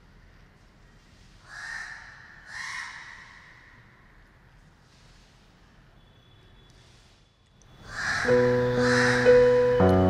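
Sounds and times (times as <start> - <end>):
crow cawing: 1.5 - 3.7, 7.9 - 9.6.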